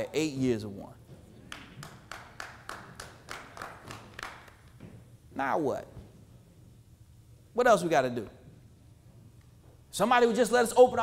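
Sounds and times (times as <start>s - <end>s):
audience clapping in slow rhythm: 1.4s - 4.8s.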